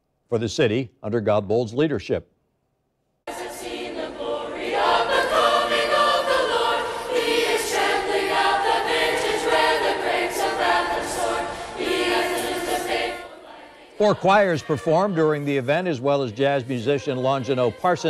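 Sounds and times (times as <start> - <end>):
mixed choir singing: 3.3 - 18.0.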